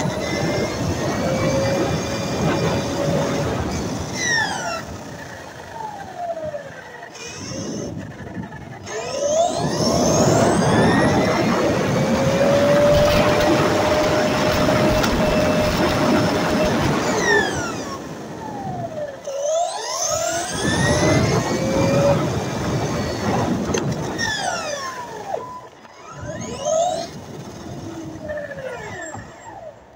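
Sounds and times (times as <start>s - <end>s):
tyre and road noise: 0.0s - 18.0s
toy car motor whining: 0.0s - 23.2s, 24.0s - 29.9s.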